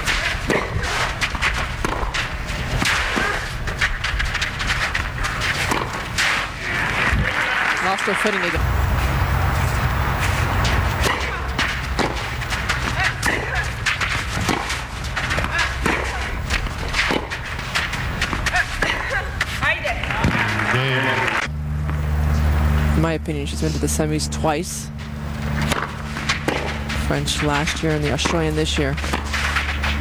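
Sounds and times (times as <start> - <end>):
tennis racquets hitting ball: 0.0 - 22.0, 23.8 - 30.0
crowd background: 0.0 - 30.0.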